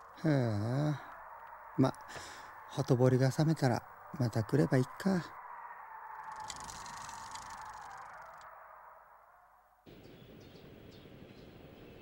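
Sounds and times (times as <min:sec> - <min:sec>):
bicycle rattling and rolling: 0:06.3 - 0:08.4.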